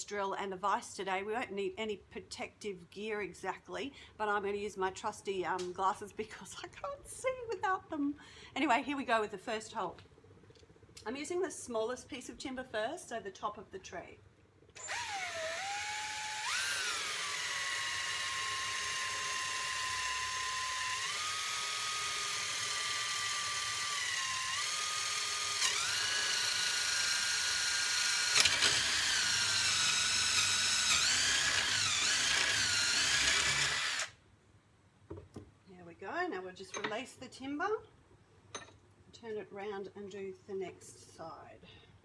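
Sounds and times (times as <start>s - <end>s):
cordless drill boring wood: 14.8s - 34.2s.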